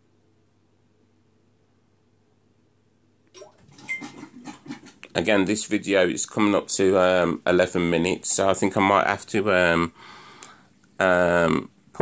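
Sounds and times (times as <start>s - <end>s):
washing machine rushing and clattering: 3.4s - 5.0s.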